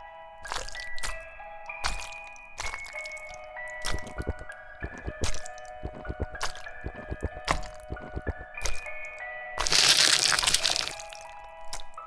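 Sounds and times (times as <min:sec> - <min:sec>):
wet squelching gore effects: 0:00.4 - 0:01.2, 0:01.8 - 0:09.0, 0:09.6 - 0:12.0.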